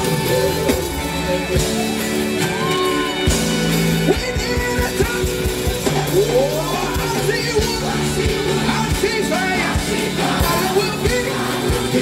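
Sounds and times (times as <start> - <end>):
gospel band playing: 0.0 - 12.0.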